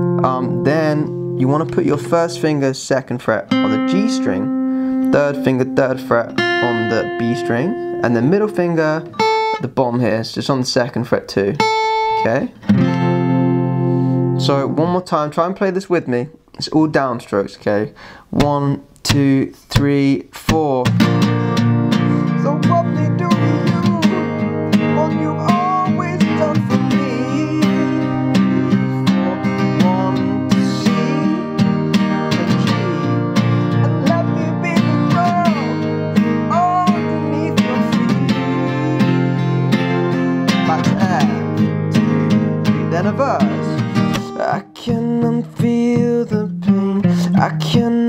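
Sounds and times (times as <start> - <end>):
acoustic guitar strumming: 0.0 - 9.7, 11.6 - 15.2, 20.5 - 48.0.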